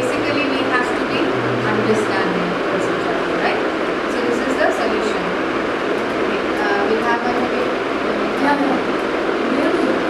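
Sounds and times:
loud room noise: 0.0 - 10.0.

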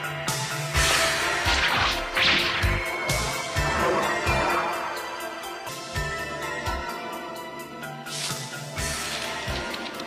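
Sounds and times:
background music: 0.0 - 10.0
sword swish: 0.8 - 3.3.

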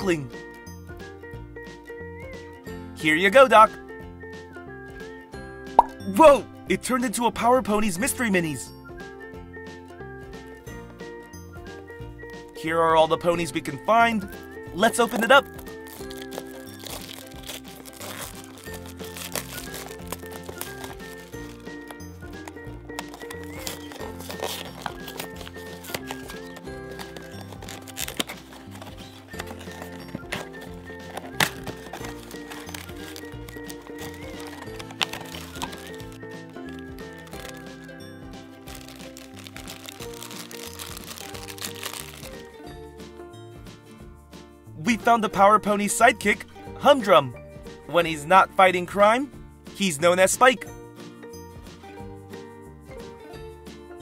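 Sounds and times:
light background music: 0.0 - 54.0
plastic wrap crinkling and tearing: 14.9 - 42.5.

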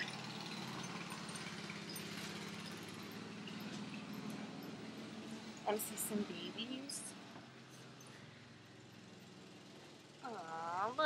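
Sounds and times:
riding lawn mower engine running: 0.0 - 11.0.

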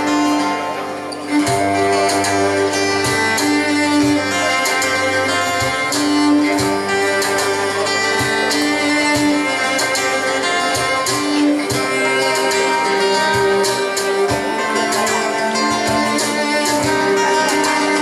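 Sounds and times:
bowed cello held notes: 0.0 - 18.0
strummed acoustic guitar: 0.0 - 18.0.

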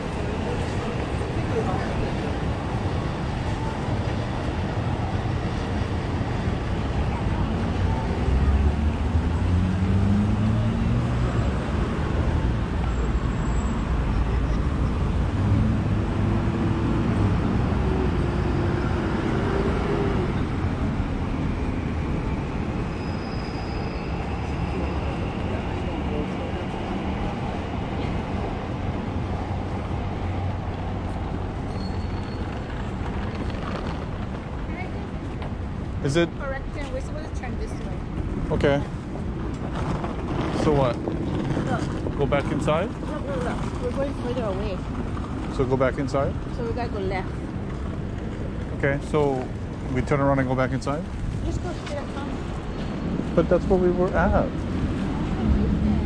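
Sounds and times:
low traffic rumble: 0.0 - 56.0
vehicles passing on street: 0.0 - 56.0.

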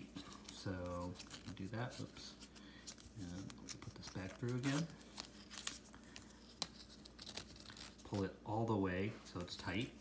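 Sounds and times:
fabric strap rustling and scraping: 0.0 - 8.3.

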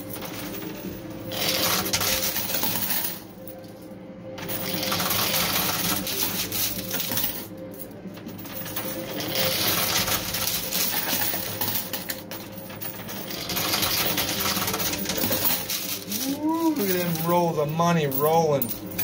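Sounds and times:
coins clattering in pusher machine: 0.0 - 3.7, 4.4 - 19.0
steady background hum: 0.0 - 19.0.

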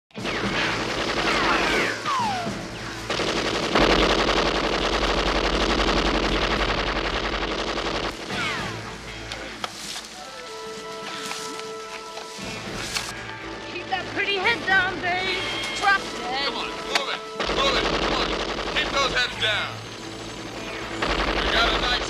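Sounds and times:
machine gun firing bursts: 0.2 - 8.8, 17.4 - 22.0.

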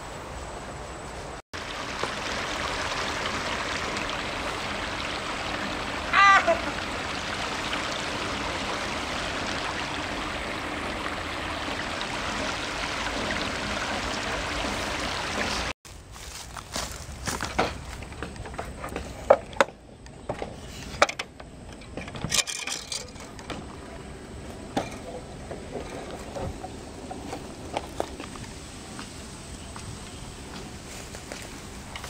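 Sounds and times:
person shouting: 6.0 - 6.8.

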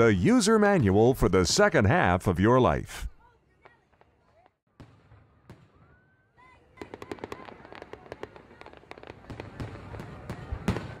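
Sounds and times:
fireworks crackling and banging: 3.2 - 11.0.

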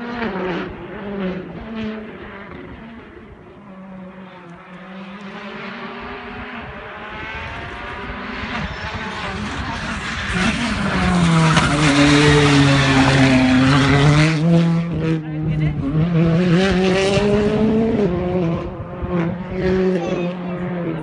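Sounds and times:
rally car engine at full throttle: 0.0 - 21.0.

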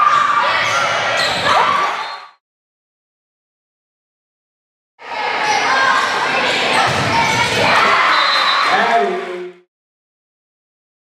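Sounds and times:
shouting and cheering: 0.0 - 2.3, 5.0 - 9.5.

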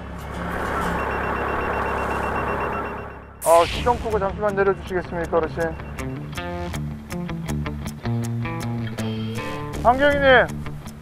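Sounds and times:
rapid high-pitched beeping: 0.3 - 6.7.

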